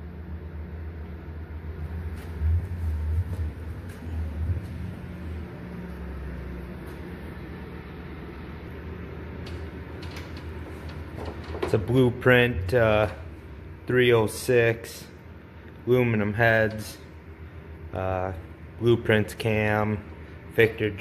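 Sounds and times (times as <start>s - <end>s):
low steady rumble: 0.0s - 21.0s.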